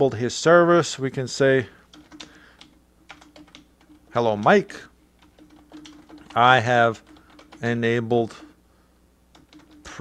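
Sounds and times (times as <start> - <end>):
faint steady hum: 0.0 - 10.0
typing on computer keyboard: 1.9 - 4.5, 5.2 - 7.8, 9.3 - 10.0.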